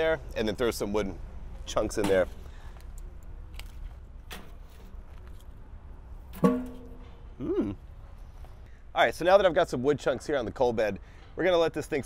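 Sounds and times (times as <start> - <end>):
low steady rumble: 0.0 - 9.3.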